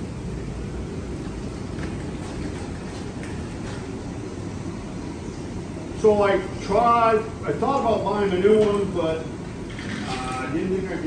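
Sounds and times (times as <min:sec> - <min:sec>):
sap evaporator low rumble: 0:00.0 - 0:11.0.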